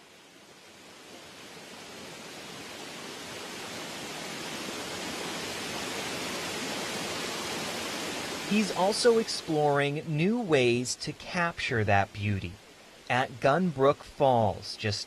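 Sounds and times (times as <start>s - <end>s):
water rushing over rocks: 1.2s - 15.0s.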